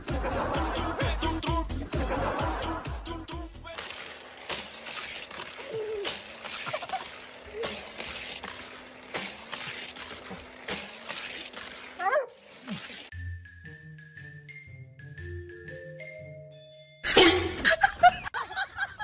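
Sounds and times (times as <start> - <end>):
toy cars whooshing: 3.3 - 13.1
toy track booster whirring: 3.3 - 13.1.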